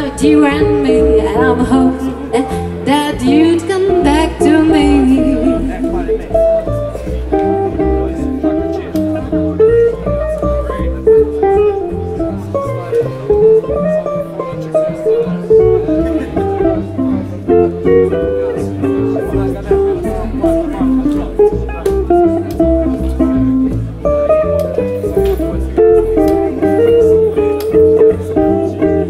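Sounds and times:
electric guitar solo: 0.0s - 29.0s
plucked double bass: 0.0s - 29.0s.

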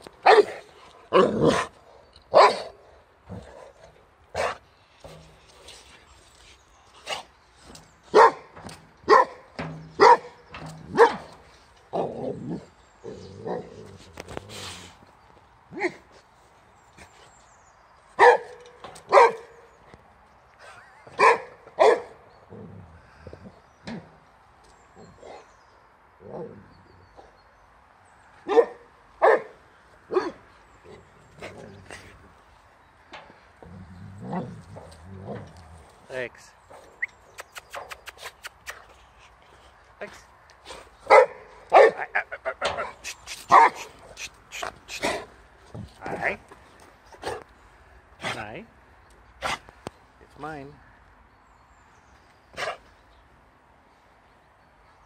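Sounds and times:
dog barking: 0.2s - 1.6s, 2.3s - 2.7s, 8.1s - 8.4s, 9.1s - 9.4s, 10.0s - 10.3s, 18.2s - 18.5s, 19.1s - 19.5s, 21.2s - 22.2s, 28.5s - 30.4s, 41.1s - 42.1s, 43.5s - 43.8s.

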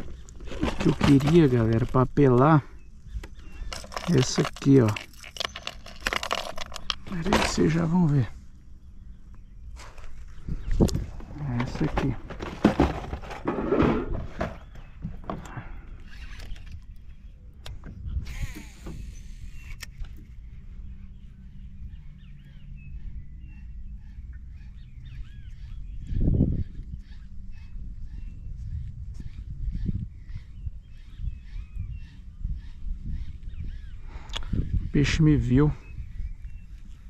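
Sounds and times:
low wind rumble: 0.0s - 37.0s.

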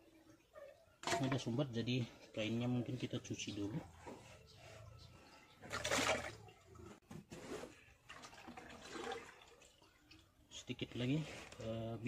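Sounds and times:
liquid splashing in a bucket: 5.6s - 7.0s, 7.8s - 10.3s.

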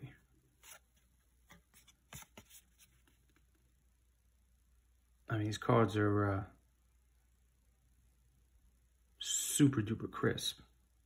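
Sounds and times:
cardboard cards being handled: 0.5s - 3.6s.

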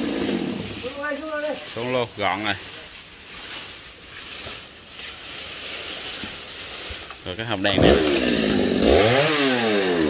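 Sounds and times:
leafy branches rustling: 0.1s - 9.2s.

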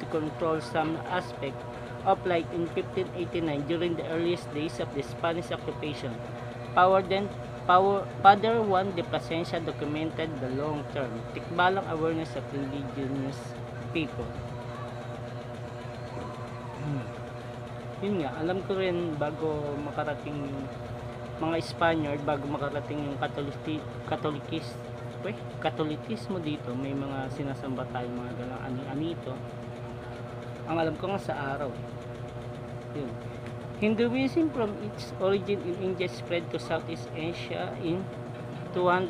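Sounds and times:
motor humming: 0.0s - 39.0s.

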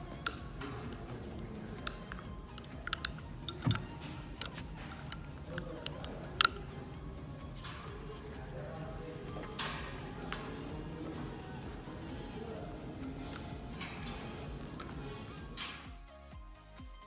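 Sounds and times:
harness metal fittings clicking: 0.0s - 16.0s.

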